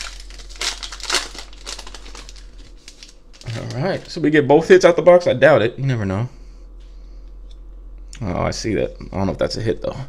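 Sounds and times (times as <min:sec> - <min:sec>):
foil wrapper tearing and crinkling: 0:00.0 - 0:04.2.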